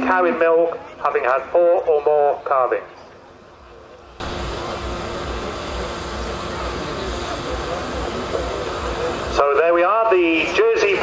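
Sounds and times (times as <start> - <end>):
faint steady hum: 2.8 - 10.9
low uneven rumble: 3.6 - 9.4.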